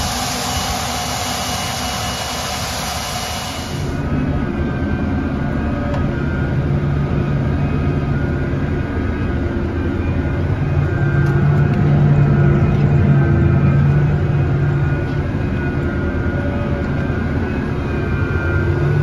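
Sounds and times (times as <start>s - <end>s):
steady rushing noise: 0.0s - 5.9s
tractor engine drone from cab: 0.0s - 19.0s.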